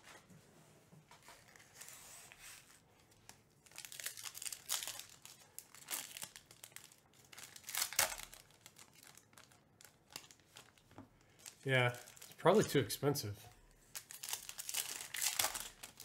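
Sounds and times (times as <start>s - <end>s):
plastic wrapper tearing and crinkling: 3.1s - 12.7s, 13.8s - 16.0s.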